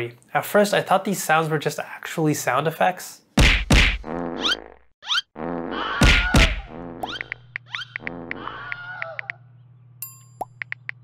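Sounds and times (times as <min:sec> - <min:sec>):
comic sound effect beat: 0:06.0 - 0:08.5.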